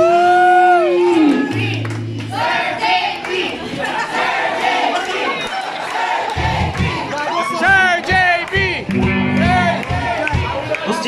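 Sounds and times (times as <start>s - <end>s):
voices singing and shouting: 0.1s - 11.0s
live rock band: 8.5s - 10.6s.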